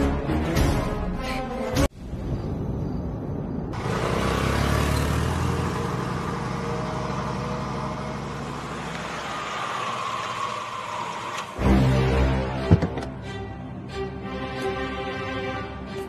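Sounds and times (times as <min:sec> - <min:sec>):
car engine and tyre noise: 0:01.9 - 0:16.0.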